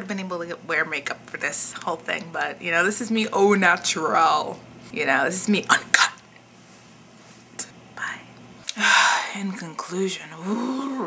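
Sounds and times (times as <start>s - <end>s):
woman whispering: 7.6s - 9.6s.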